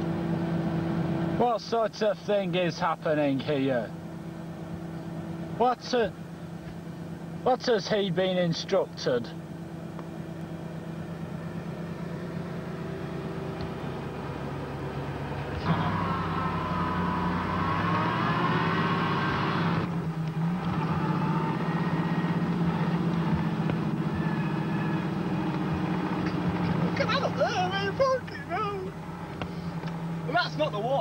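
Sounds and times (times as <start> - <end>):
car engine revving: 8.5 - 31.0.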